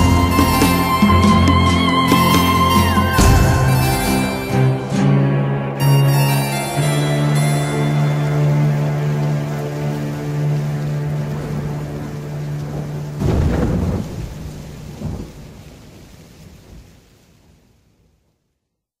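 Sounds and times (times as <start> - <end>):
thunder rumbling: 0.0 - 5.7, 8.0 - 17.7
held musical chord: 0.0 - 13.2
rain: 0.0 - 18.9.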